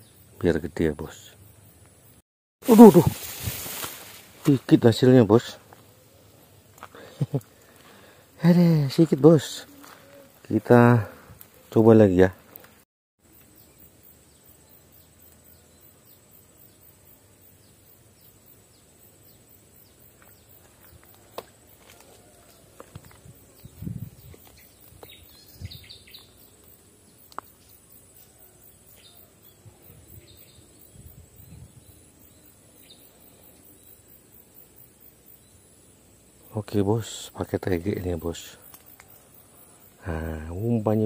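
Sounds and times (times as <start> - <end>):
sharp clicks: 38.7 - 39.2.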